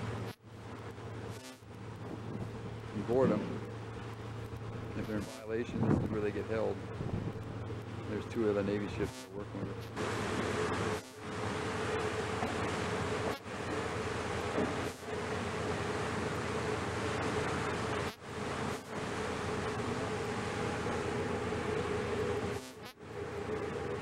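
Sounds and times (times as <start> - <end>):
boat engine buzzing drone: 0.0 - 24.0.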